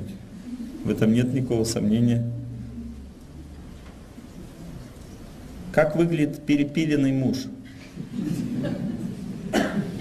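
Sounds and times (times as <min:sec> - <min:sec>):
low room rumble with hiss: 0:00.0 - 0:10.0.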